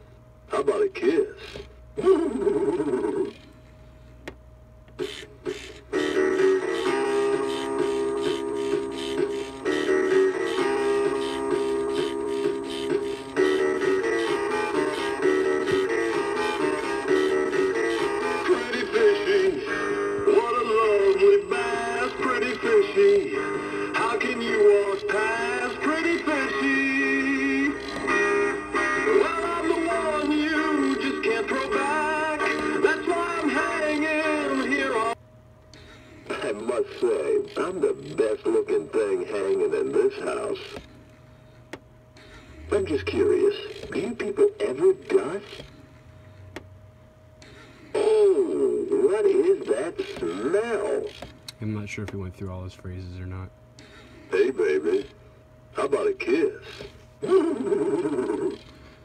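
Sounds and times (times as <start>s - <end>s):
toy singing with backing music: 5.0s - 35.2s, 36.3s - 40.8s, 42.8s - 45.7s, 48.0s - 51.3s, 57.2s - 58.8s.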